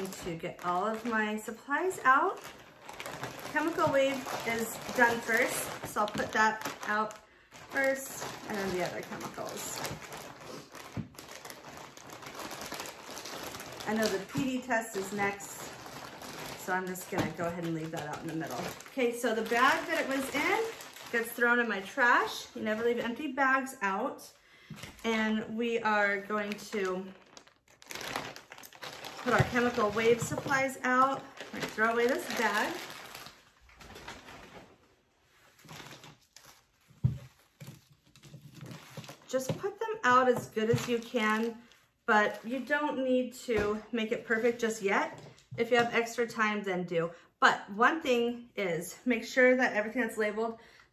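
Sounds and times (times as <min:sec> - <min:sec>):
plastic bags crinkling: 0:00.0 - 0:23.6, 0:24.2 - 0:42.8.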